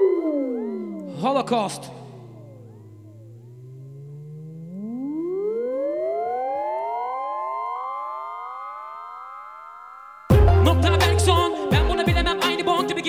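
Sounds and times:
synthesized rising sweep: 0.0 - 11.7.

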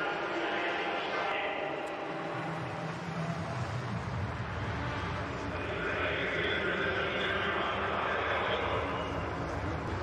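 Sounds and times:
steady rushing noise: 0.0 - 10.0
faint voices: 4.8 - 10.0.

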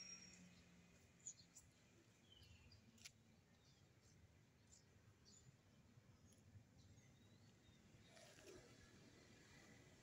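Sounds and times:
faint bird chirps: 0.0 - 5.6.

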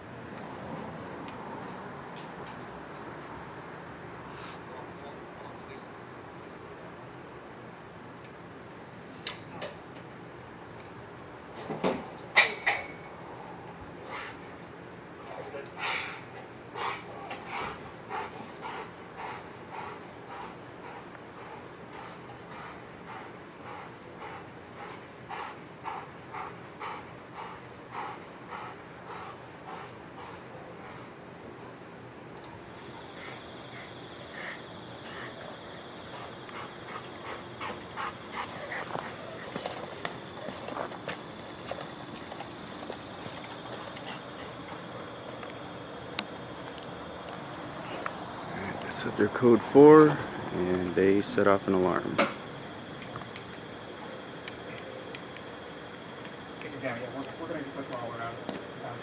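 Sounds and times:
dog panting: 15.3 - 31.4, 32.4 - 58.5.

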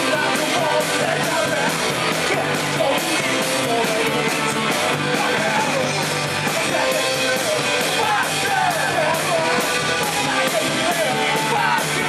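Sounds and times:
drums driving beat: 0.0 - 12.0
guitars: 0.0 - 12.0.

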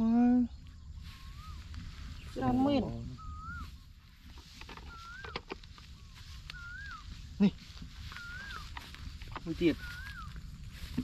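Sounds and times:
bird whistling call: 1.0 - 4.0, 4.6 - 9.0, 9.7 - 10.5.

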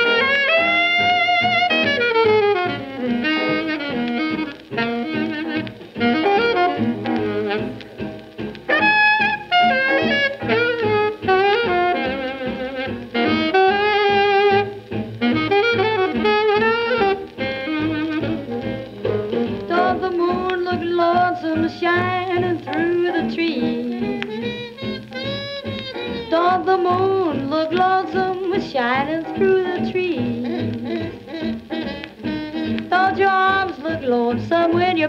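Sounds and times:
swing big band recording: 0.0 - 35.0.

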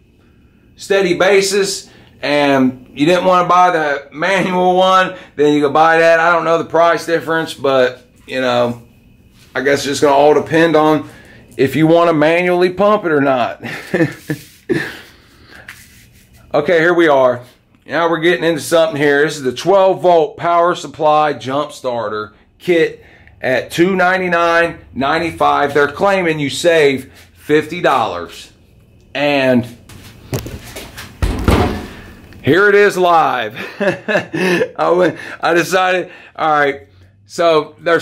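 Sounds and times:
man's breathy laugh: 13.6 - 15.3, 33.5 - 35.4
low thump: 31.2 - 32.1.

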